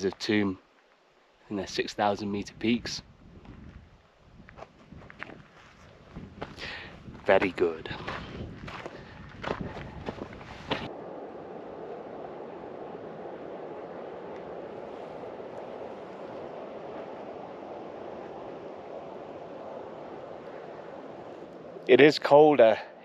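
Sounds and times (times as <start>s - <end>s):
steady wind: 0.0s - 23.0s
footsteps on rocky ground: 3.4s - 10.9s.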